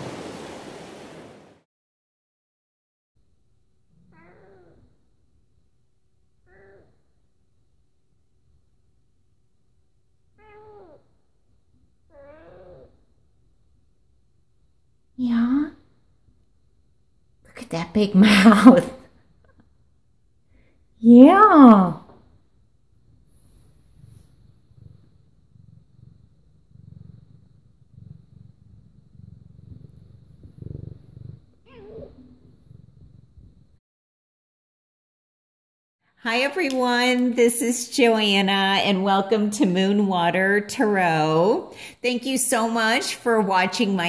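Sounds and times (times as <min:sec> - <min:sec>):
cat purring: 0:03.8 - 0:33.8
cat meowing: 0:04.0 - 0:05.0, 0:06.4 - 0:07.0, 0:10.4 - 0:11.0, 0:12.1 - 0:13.0, 0:31.6 - 0:32.3.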